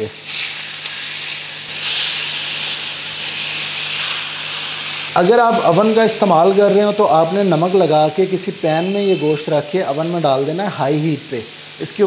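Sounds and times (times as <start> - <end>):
meat sizzling in a frying pan: 0.0 - 12.0.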